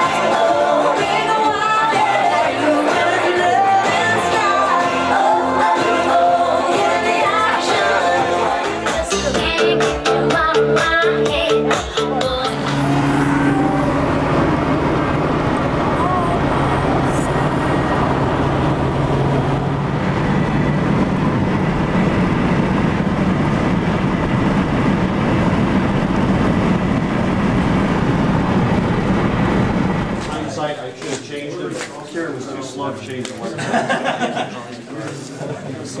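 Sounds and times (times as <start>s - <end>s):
car engine drone: 0.0s - 31.0s
road noise: 10.0s - 34.5s.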